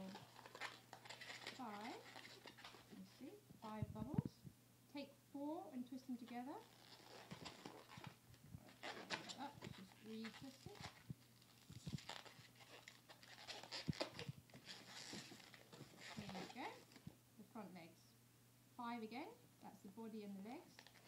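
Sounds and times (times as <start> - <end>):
balloon squeaking and crackling: 0.0 - 3.0, 6.5 - 17.1.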